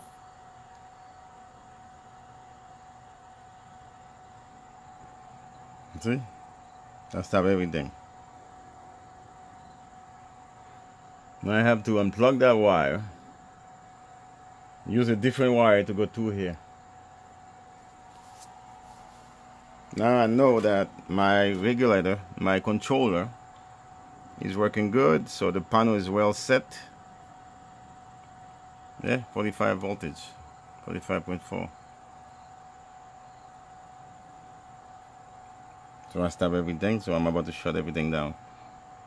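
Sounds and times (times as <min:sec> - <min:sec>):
faint high hum: 0:00.0 - 0:39.0
low steady hiss: 0:00.0 - 0:39.0
faint rustle: 0:17.2 - 0:21.7.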